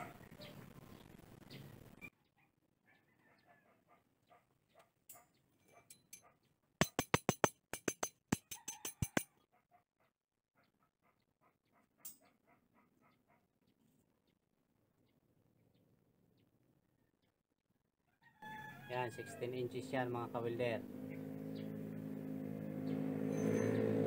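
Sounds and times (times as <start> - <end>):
sharp metallic clicks: 6.8 - 9.2.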